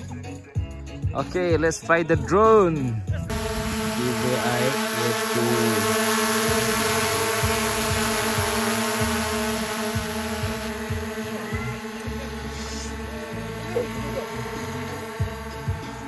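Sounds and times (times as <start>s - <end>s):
drone propellers buzzing: 3.3s - 16.0s.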